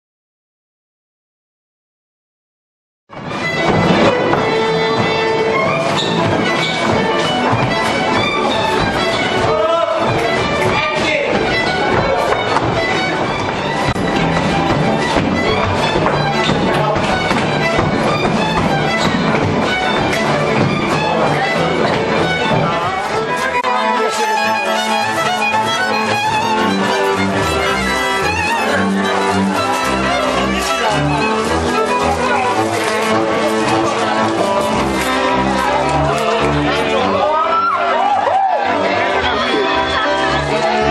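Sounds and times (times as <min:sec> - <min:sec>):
string band folk dance music: 0:03.1 - 0:40.9
bowed double bass: 0:03.2 - 0:40.9.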